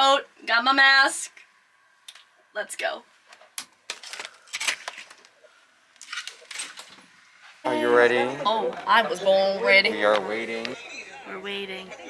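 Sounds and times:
camera handling rustling: 3.3 - 5.4.

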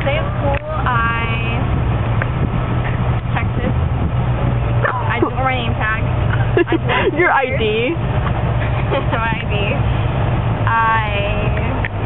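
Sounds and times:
car engine rumble: 0.0 - 12.0
person talking: 4.8 - 8.0.

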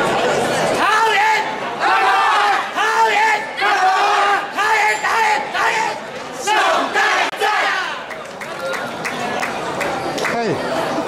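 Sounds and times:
murmur of crowd chatter: 0.0 - 11.0
group chanting in unison: 1.8 - 8.0.

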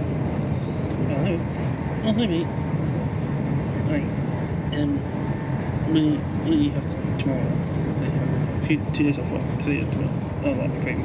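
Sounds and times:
passengers' voices: 0.0 - 11.0
train interior rumble: 0.0 - 11.0.

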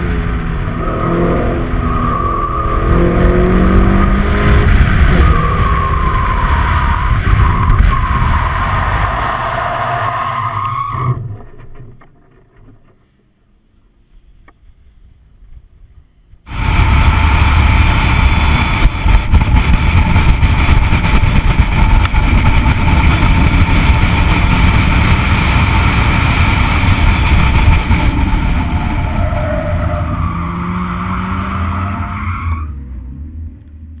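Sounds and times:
car engine driven hard: 0.0 - 11.9, 16.5 - 34.0
wind and road noise: 0.0 - 34.0.

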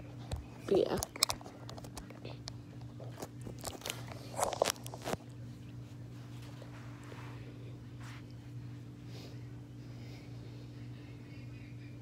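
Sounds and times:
steady low hum: 0.0 - 12.0
phone handling clicks and rustles: 0.3 - 2.2.

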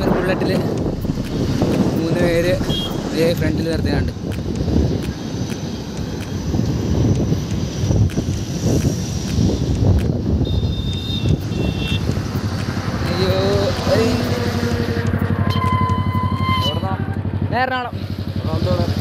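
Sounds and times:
wind buffeting microphone: 0.0 - 16.4
traffic noise: 0.0 - 19.0
high-pitched tone: 15.3 - 17.2.

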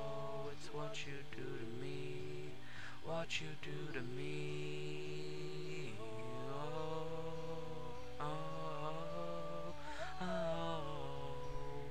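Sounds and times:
person singing long notes: 0.0 - 11.9.

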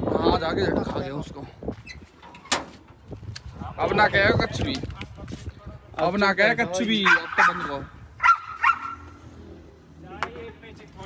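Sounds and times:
large dog barking: 7.0 - 9.1.

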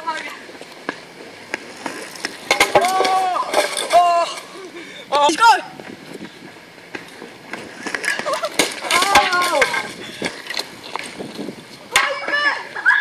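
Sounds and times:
person yelling: 2.8 - 4.4, 5.1 - 5.8, 12.0 - 13.0
bicycle rattling and clattering: 6.9 - 12.3.

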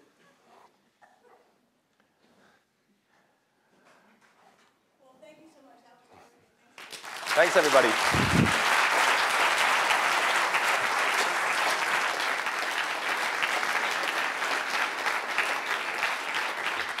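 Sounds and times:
audience applause: 6.8 - 17.0.

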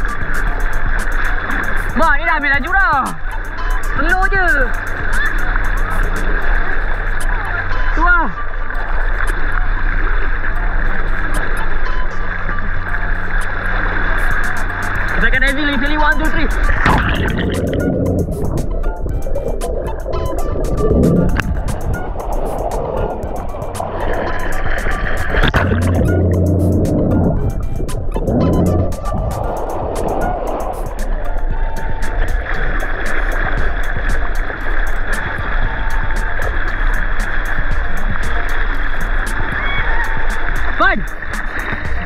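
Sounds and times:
background music: 0.0 - 9.4, 10.6 - 42.0
muffled underwater rushing water: 0.0 - 42.0
water splashing: 0.0 - 42.0.

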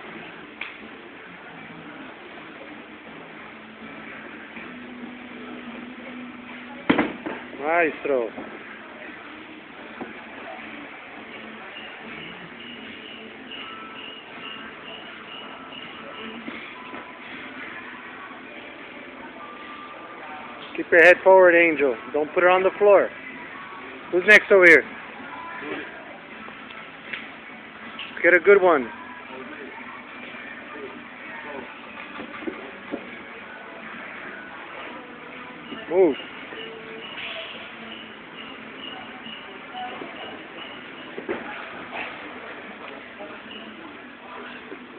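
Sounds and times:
faint background music: 0.0 - 44.9
gym room noise: 0.0 - 44.9.

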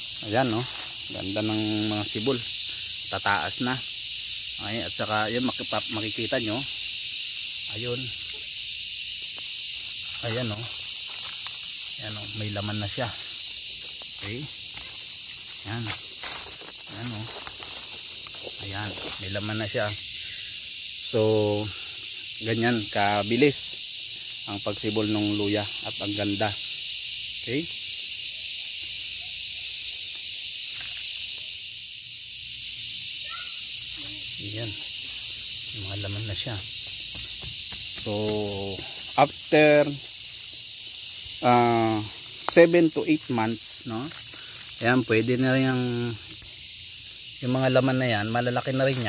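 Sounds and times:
high-pitched hiss: 0.0 - 49.0
high-pitched insect chorus: 0.0 - 49.0.

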